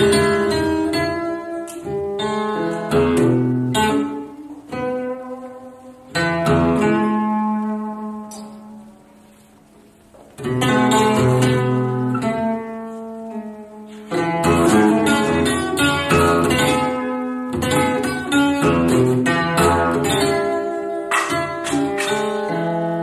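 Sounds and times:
acoustic guitar picking: 0.0s - 9.0s, 10.4s - 23.0s.

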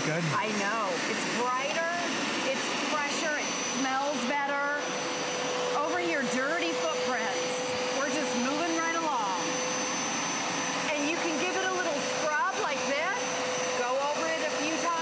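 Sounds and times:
carpet cleaner motor whine: 0.0s - 15.0s.

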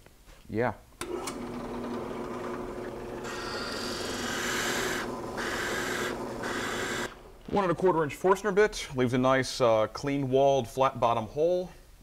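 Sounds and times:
drill press motor hum: 1.0s - 7.3s
drill bit boring into wood: 1.1s - 7.2s.

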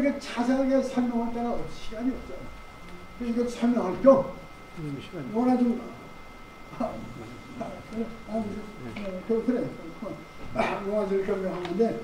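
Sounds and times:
man speaking: 0.0s - 2.6s, 3.2s - 6.1s, 6.7s - 12.0s.

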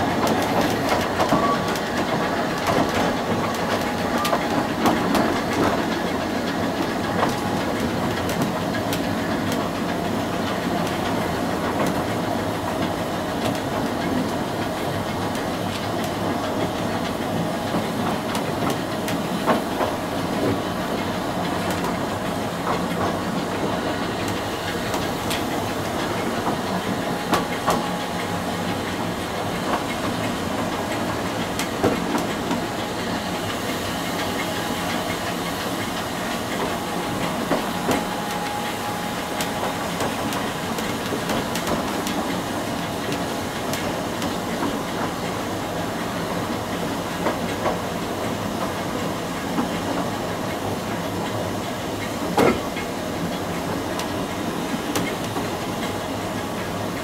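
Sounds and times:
train wheels knocking on rail joints: 0.0s - 56.9s.

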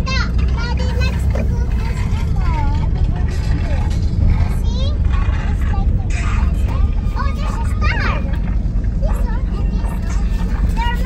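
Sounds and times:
car engine and tyres rumbling: 0.0s - 11.0s
voices: 0.0s - 11.0s.

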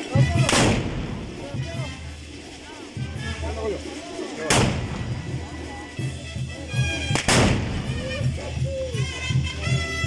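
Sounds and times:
musket shots: 0.4s - 1.2s, 4.5s - 4.9s, 7.1s - 7.8s.

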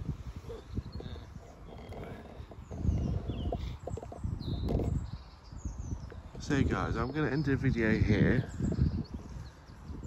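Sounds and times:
birds chirping: 0.0s - 10.0s
low rumble on microphone: 0.0s - 10.0s.

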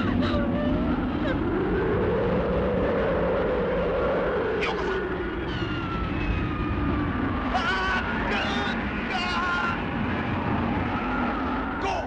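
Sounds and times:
jet aircraft roar: 0.0s - 12.0s.

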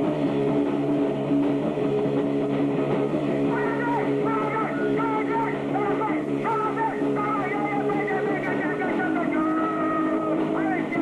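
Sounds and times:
bass guitar: 0.0s - 11.0s
distorted electric guitar: 0.0s - 11.0s.

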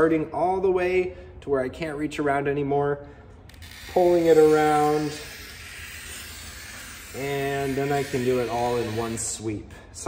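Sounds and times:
glass cutter wheel scoring glass: 3.6s - 9.3s.

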